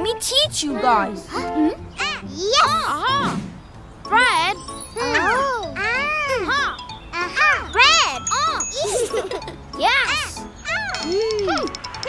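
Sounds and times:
tinkling children's music: 3.9 - 12.0.

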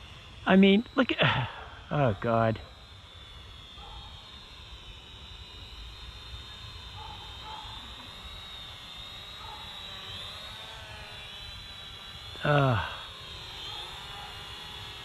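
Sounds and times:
quadcopter propellers whining: 0.0 - 15.0.

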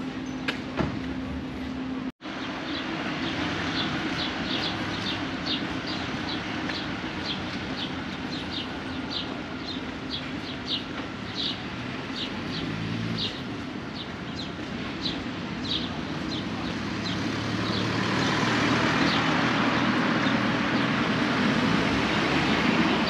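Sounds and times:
street traffic hum: 0.0 - 23.0
small birds chirping: 2.4 - 21.0
vehicle engine passing: 11.7 - 13.5, 16.3 - 23.0.

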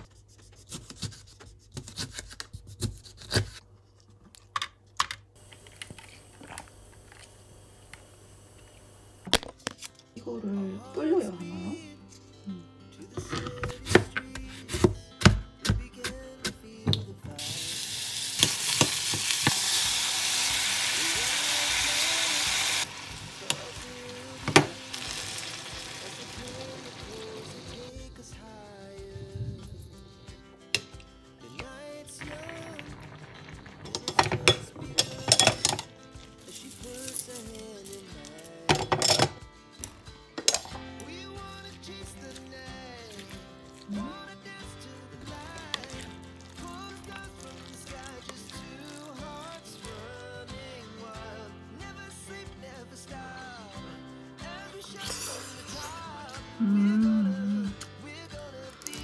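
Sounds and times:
soft background music: 9.6 - 59.0
food sizzling in a hot pot: 17.4 - 27.9, 32.1 - 38.0, 43.0 - 44.2, 45.3 - 50.1
utensils clinking against pot: 33.4 - 35.9, 38.7 - 39.4, 40.4 - 40.8.

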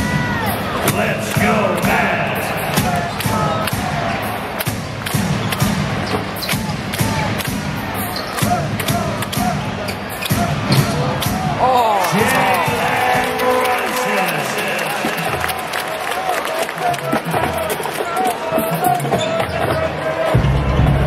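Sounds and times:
arena music: 0.0 - 21.0
crowd chatter: 0.0 - 21.0
sneakers squeaking: 8.0 - 11.1, 18.6 - 20.0.

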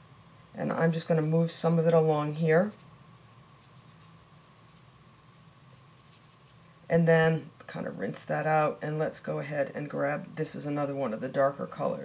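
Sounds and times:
brush strokes on paper: 0.8 - 2.9, 3.5 - 6.6.

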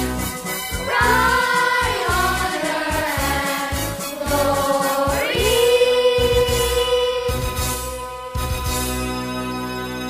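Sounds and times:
children's choir singing: 0.8 - 8.3.

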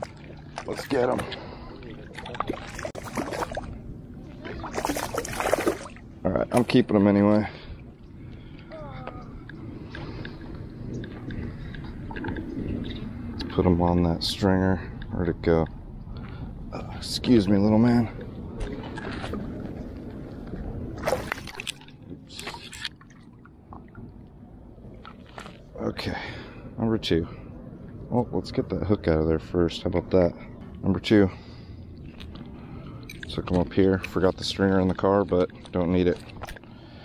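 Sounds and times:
fish splashing in water: 0.0 - 3.8, 4.4 - 6.1, 21.0 - 23.4.

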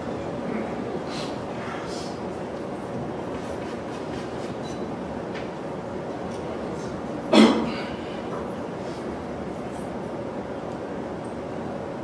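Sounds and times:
room noise hum: 0.0 - 12.0
loud cough: 7.3 - 8.0.

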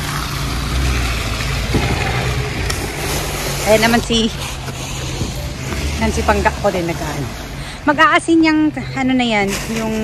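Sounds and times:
truck engine humming: 0.0 - 9.7.

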